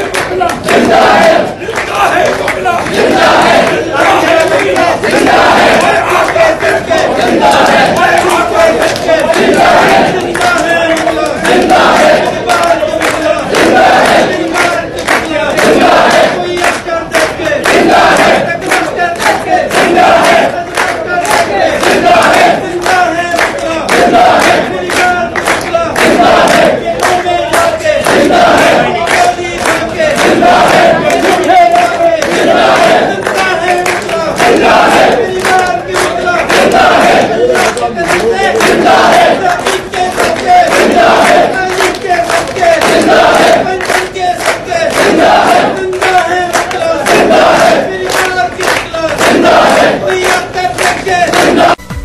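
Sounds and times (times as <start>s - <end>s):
crowd chanting slogans: 0.0s - 51.9s.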